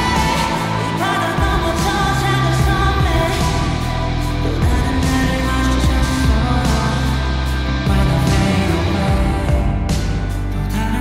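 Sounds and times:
man singing pop song: 0.0s - 11.0s
synth and bass notes: 0.0s - 11.0s.

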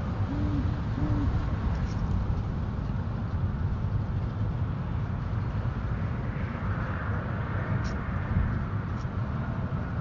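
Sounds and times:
wind rumble on microphone: 0.0s - 10.0s
owl hooting: 0.2s - 1.4s.

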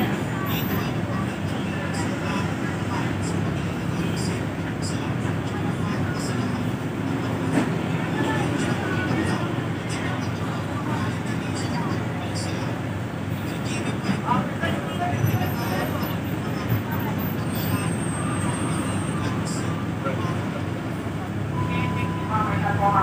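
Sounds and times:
bus engine idling: 0.0s - 23.0s
indistinct voices: 0.0s - 23.0s.

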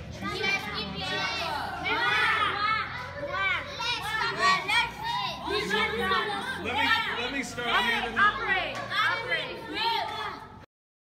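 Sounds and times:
girls calling out and talking: 0.0s - 10.6s.

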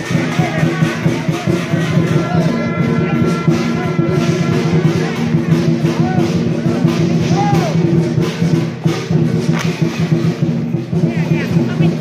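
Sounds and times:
drum beating steady rhythm: 0.0s - 12.0s
gong and cymbals clashing: 0.0s - 12.0s.

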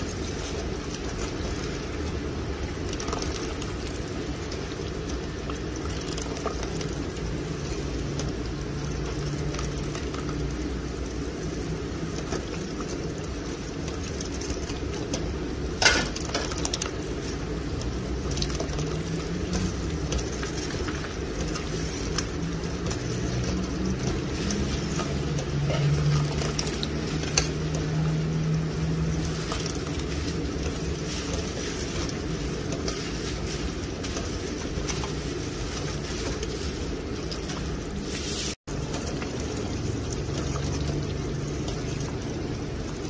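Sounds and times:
liquid pouring into pot: 0.0s - 11.5s, 12.1s - 37.7s
ladle stirring thick liquid: 0.0s - 43.0s.

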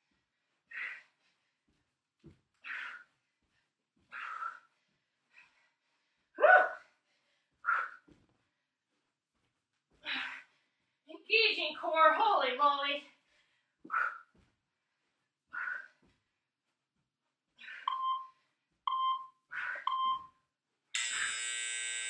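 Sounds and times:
interval timer short beeps: 17.9s - 18.3s, 18.9s - 20.4s
long buzzer: 21.0s - 22.0s.

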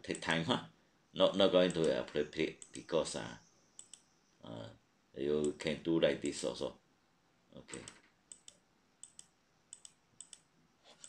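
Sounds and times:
faint input clicks: 3.8s - 4.1s.

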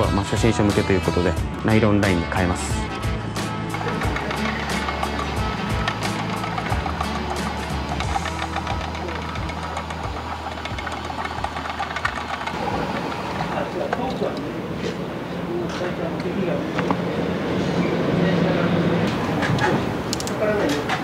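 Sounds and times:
background music: 0.0s - 13.8s
line-winding machine motor running: 2.8s - 16.6s.

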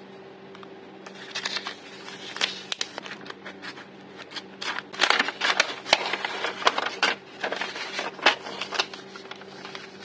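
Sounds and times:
plastic envelope crinkling: 1.1s - 10.0s.

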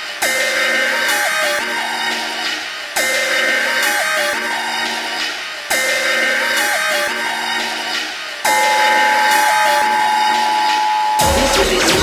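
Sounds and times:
dubstep music: 0.0s - 12.0s
two-tone emergency alert tone: 8.5s - 11.5s.

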